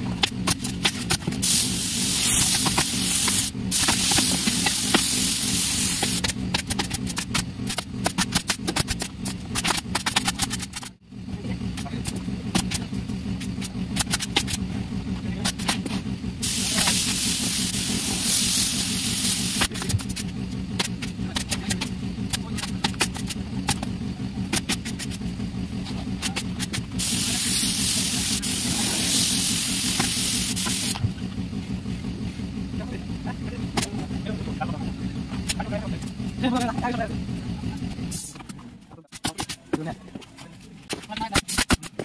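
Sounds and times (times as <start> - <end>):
compressed air spray hissing: 0.9 - 6.4, 16.4 - 19.7, 27.0 - 31.0.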